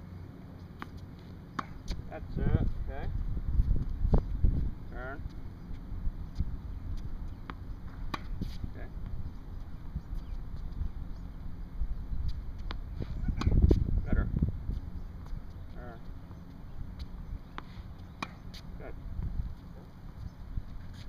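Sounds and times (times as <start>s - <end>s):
tennis ball bouncing on hard court: 0.8s - 2.0s, 7.4s - 9.2s, 12.6s - 13.8s, 16.2s - 18.7s
tennis ball hitting racquet strings: 1.6s - 2.0s, 17.5s - 18.6s
wind rumbling on microphone: 1.8s - 17.5s, 19.0s - 21.0s.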